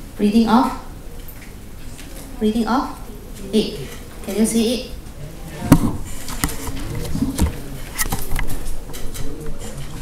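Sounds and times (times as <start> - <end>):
camera clicks and knocks: 5.7 - 8.5.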